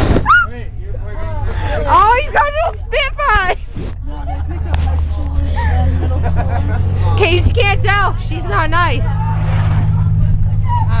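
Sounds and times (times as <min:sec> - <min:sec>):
bus engine drone: 0:00.0 - 0:11.0.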